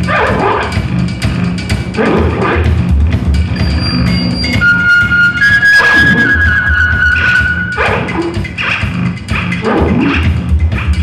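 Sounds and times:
high wavering electronic tone: 3.5s - 7.8s.

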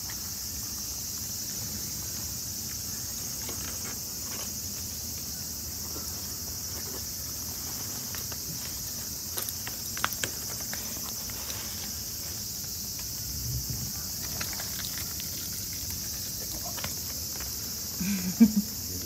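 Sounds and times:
high-pitched insect chorus: 0.0s - 19.0s.

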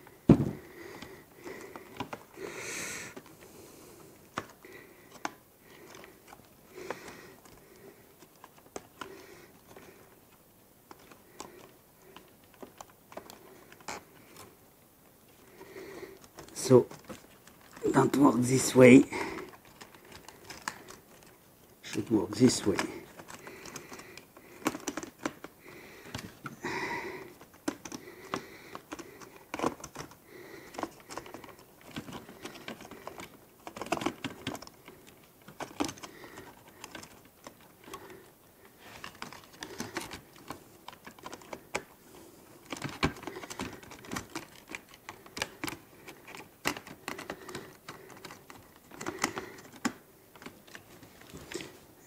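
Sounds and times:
plastic parts and tools clicking: 0.3s - 2.4s, 4.2s - 14.5s, 16.1s - 18.2s, 19.3s - 26.6s, 27.2s - 42.0s, 42.6s - 51.7s.

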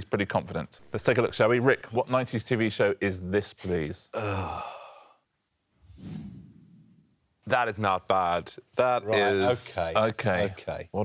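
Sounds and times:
man's laughing sigh: 4.2s - 5.1s.

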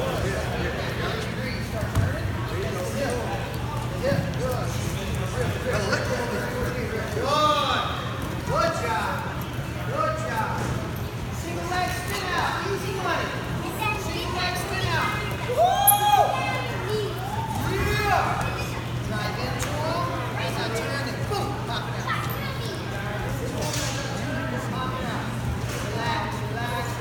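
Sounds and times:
floor fan humming: 0.0s - 27.0s.

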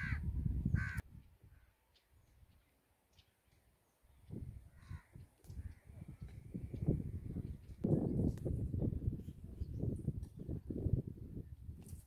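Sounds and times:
crow cawing: 0.0s - 0.2s, 0.8s - 1.0s, 4.7s - 5.8s.

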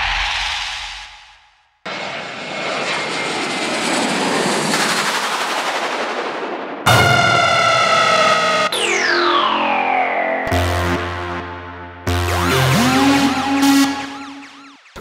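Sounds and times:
jet airliner roar: 1.8s - 10.2s.

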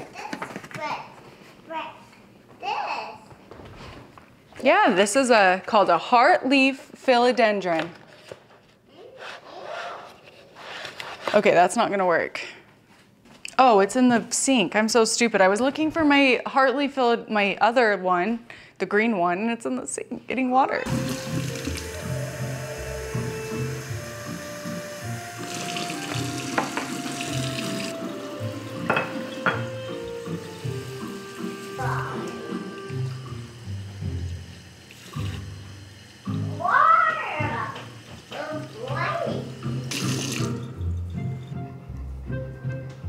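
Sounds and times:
faucet water splashing into sink: 20.9s - 40.7s.

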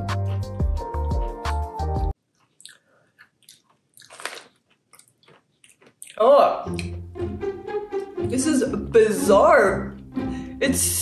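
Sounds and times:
mouth chewing crunchy snack: 2.2s - 7.0s.

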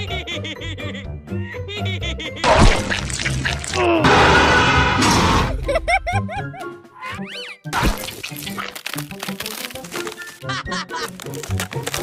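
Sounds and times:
cartoon music: 6.6s - 8.8s.

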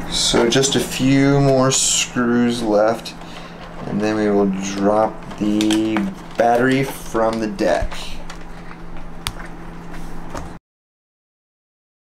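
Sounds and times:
low steady hum: 0.0s - 10.6s.

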